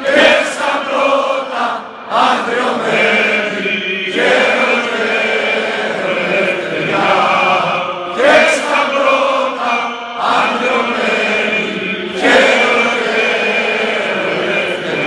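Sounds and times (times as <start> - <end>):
crowd singing in unison: 0.0 - 15.0.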